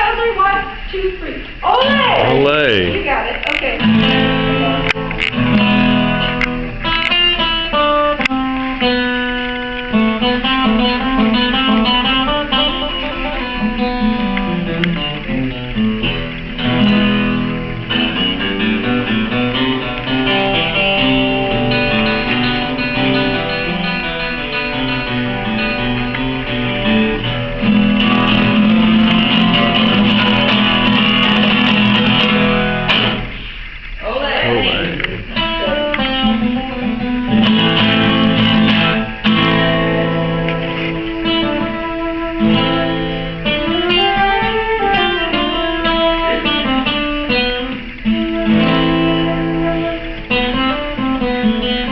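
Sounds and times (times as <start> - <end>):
acoustic guitar playing: 1.5 - 51.9.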